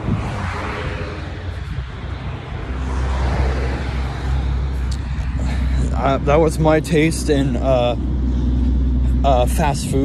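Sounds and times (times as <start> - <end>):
car traffic rumble: 0.0 - 10.0.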